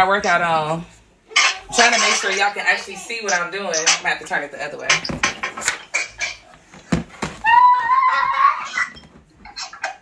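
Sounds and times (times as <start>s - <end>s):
child squealing: 7.4s - 9.0s.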